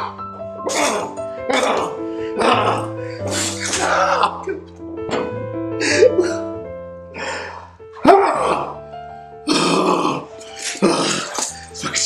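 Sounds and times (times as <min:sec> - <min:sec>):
background music: 0:00.0 - 0:12.0
man groaning angrily: 0:00.8 - 0:04.6, 0:08.1 - 0:08.8.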